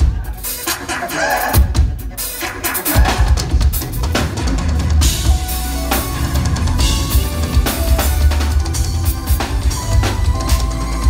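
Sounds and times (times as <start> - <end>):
drum kit kick and snare: 0.0 - 11.0
heavy bass: 2.9 - 11.0.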